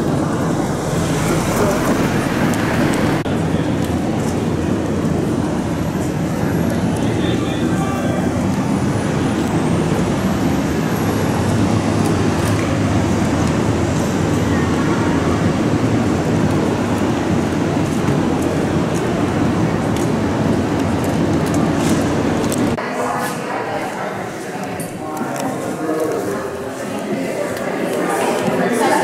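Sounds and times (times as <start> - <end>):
faint voices of people: 0.0 - 29.0
low traffic rumble: 0.0 - 29.0.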